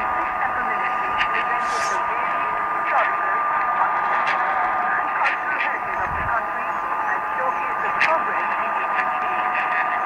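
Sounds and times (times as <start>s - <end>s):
muffled radio news voice: 0.0s - 3.6s, 4.8s - 10.0s
radio hiss: 0.0s - 3.9s, 4.6s - 10.0s
steady radio whistle: 0.6s - 3.5s.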